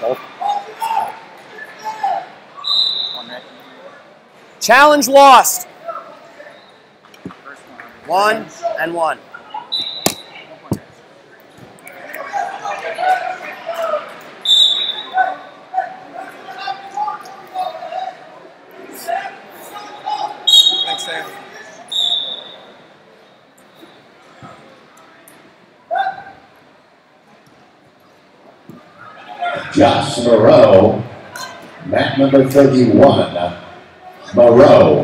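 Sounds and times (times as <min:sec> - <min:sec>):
voices shouting in echoing hall: 0:00.0 - 0:03.8, 0:11.9 - 0:23.0, 0:25.8 - 0:26.6, 0:28.8 - 0:31.8
referee's whistle blasts: 0:02.6 - 0:03.7, 0:09.7 - 0:10.4, 0:14.4 - 0:15.2, 0:20.4 - 0:21.3, 0:21.9 - 0:22.8.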